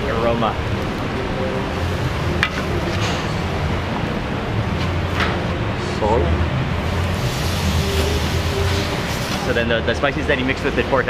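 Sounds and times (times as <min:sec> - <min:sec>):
low rumble with hiss: 0:00.0 - 0:11.0.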